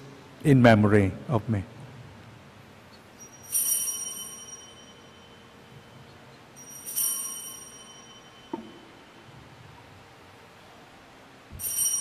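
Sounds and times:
altar bells ringing: 3.1s - 9.3s, 11.5s - 12.0s.

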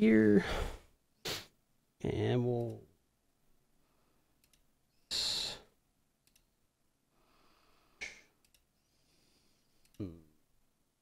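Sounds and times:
computer mouse clicks: 4.4s - 4.7s, 6.2s - 6.5s, 8.0s - 8.7s.

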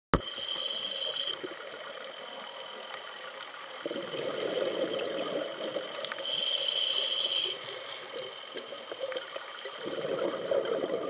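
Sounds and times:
underwater hiss: 0.2s - 1.7s, 3.8s - 9.1s
faint clicks: 0.2s - 3.8s, 5.7s - 9.8s.

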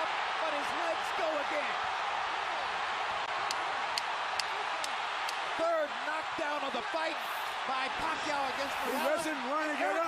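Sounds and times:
crowd cheering: 0.0s - 10.0s.

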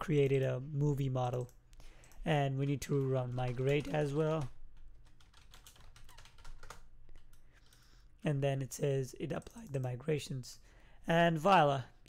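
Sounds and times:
computer keyboard typing: 1.4s - 7.8s.

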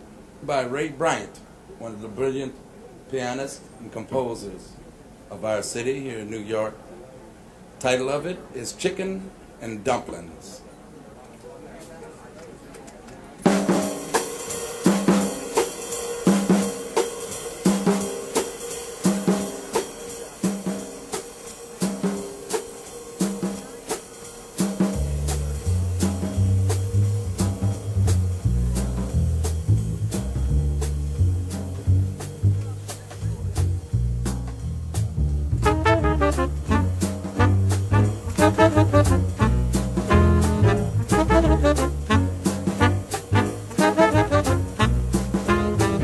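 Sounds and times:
jazz drum kit swing rhythm: 13.2s - 46.0s
upright bass walking notes: 25.0s - 46.0s.

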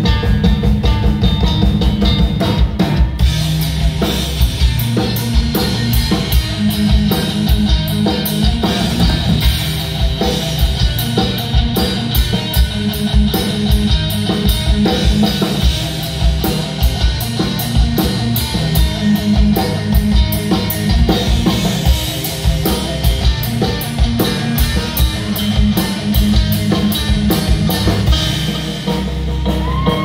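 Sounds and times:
heavy metal band playing: 0.0s - 30.0s.

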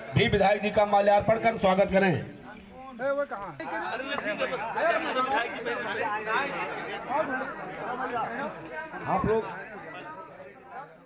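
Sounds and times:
men chattering in a crowd: 0.0s - 11.0s.

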